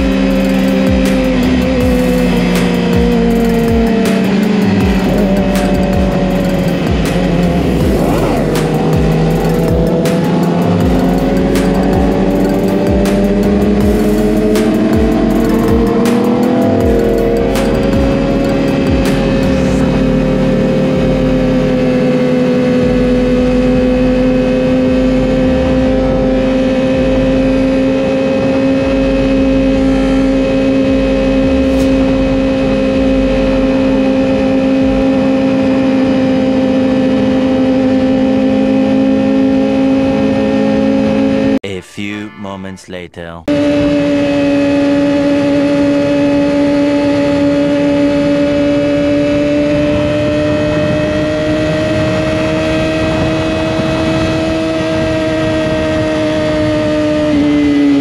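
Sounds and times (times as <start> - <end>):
trap beat bass drum: 0.0 - 20.4
motorcycle engine at high revs: 0.0 - 41.6, 43.5 - 58.0.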